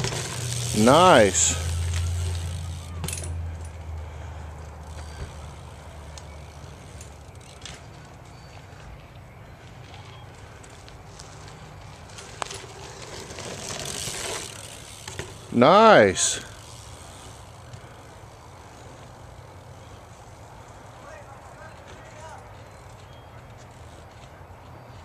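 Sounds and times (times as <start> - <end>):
bike rolling on dirt trail: 0.0 - 25.0.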